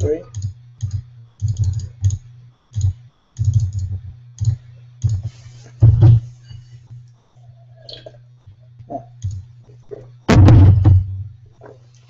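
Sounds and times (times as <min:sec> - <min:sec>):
computer mouse clicking: 0:00.0 - 0:05.3, 0:09.2 - 0:09.5
low hum: 0:00.0 - 0:12.0.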